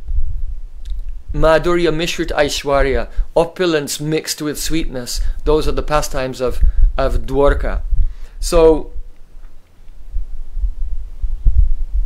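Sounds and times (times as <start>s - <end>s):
low rumble: 0.0s - 3.4s, 5.2s - 12.0s.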